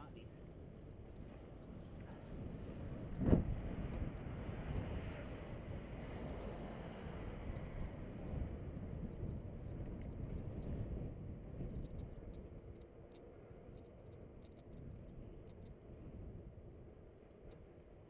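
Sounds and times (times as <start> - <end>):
wind buffeting microphone: 0.3 - 18.0
bike tyres rolling: 0.4 - 18.0.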